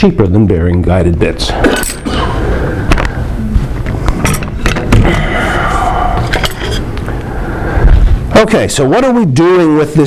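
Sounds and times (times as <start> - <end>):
steady low rumble: 0.9 - 8.9.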